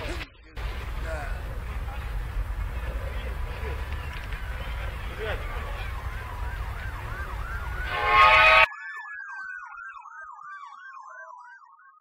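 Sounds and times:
low background rumble: 0:00.6 - 0:08.1
emergency sirens wailing: 0:00.6 - 0:08.7
loud horn-like blast: 0:01.6 - 0:08.7
slower falling tone: 0:04.5 - 0:09.8.

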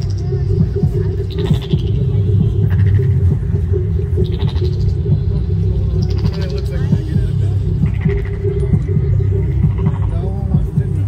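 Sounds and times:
low rumble and hum: 0:00.0 - 0:11.0.

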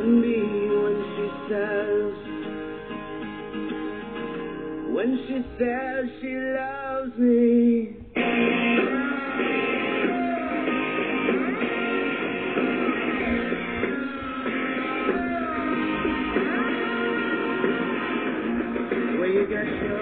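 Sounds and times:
rock song on radio: 0:00.0 - 0:20.0.

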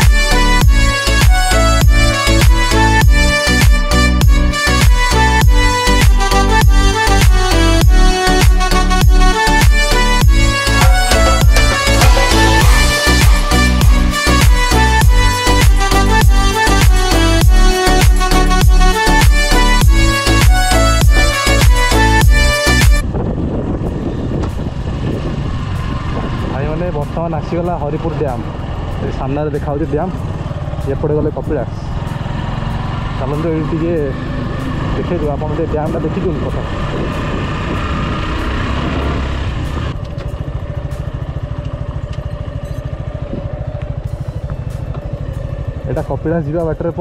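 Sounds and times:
motorcycle engine running: 0:00.0 - 0:47.0
wind rushing over microphone: 0:23.0 - 0:27.4, 0:34.2 - 0:40.0.

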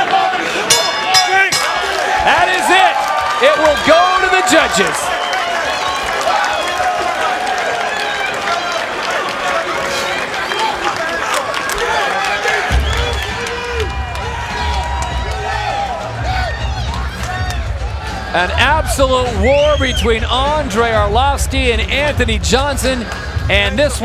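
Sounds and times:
crowd cheering and shouting: 0:00.0 - 0:21.1
people clapping: 0:01.5 - 0:17.9.

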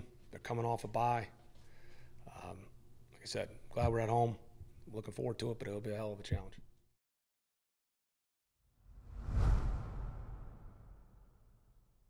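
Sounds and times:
deep whoosh: 0:08.8 - 0:11.8.

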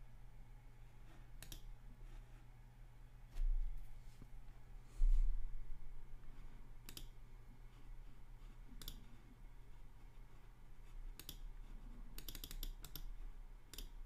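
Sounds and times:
low electrical hum: 0:00.0 - 0:14.0
computer mouse clicks: 0:01.4 - 0:01.7, 0:06.8 - 0:07.2, 0:08.7 - 0:09.1, 0:11.1 - 0:11.5, 0:12.1 - 0:14.0.

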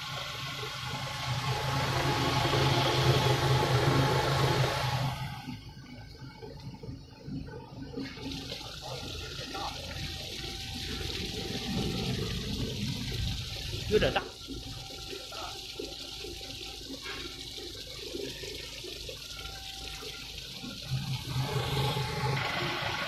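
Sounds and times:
water rushing from drain: 0:00.0 - 0:05.6, 0:08.0 - 0:23.0
low motor hum: 0:00.0 - 0:23.0
machine churning seeds and water: 0:00.0 - 0:23.0.

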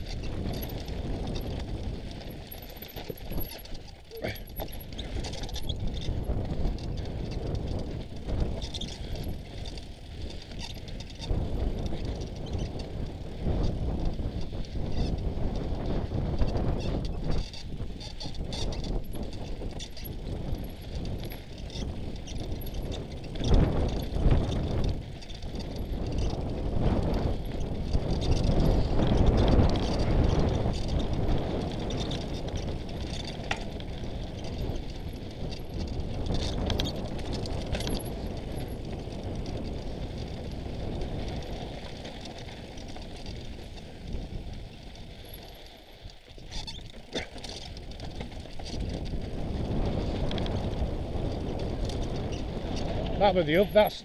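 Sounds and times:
bike tyres crunching over gravel: 0:00.0 - 0:54.0.

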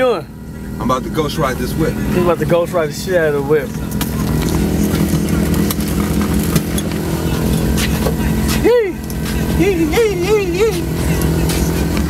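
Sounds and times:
car engine running at low revs: 0:00.0 - 0:12.0
man chanting: 0:07.0 - 0:12.0.

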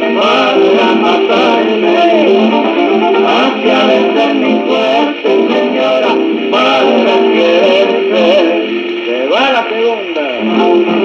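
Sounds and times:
guitar accompaniment: 0:00.0 - 0:11.0
vocal duet singing: 0:00.0 - 0:11.0.

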